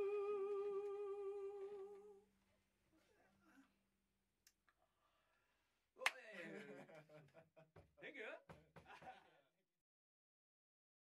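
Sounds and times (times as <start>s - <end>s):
person humming with vibrato: 0.0s - 2.2s.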